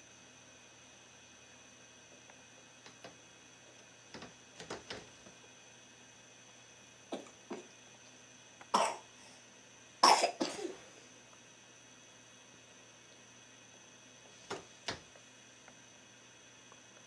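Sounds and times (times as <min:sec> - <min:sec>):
baby coughing: 0:07.1 - 0:07.4, 0:08.7 - 0:09.1, 0:10.0 - 0:10.8.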